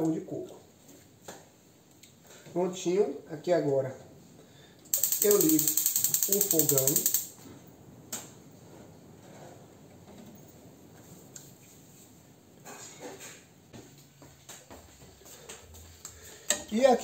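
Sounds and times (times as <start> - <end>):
gas burner hissing: 4.9 - 7.4
sharp click: 5.0 - 7.3.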